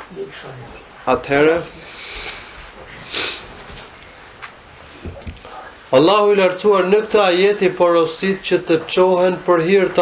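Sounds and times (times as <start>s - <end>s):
man speaking: 0.0s - 1.8s, 5.9s - 10.0s
room hiss: 0.0s - 10.0s
man's sharp intake of breath: 1.8s - 3.6s.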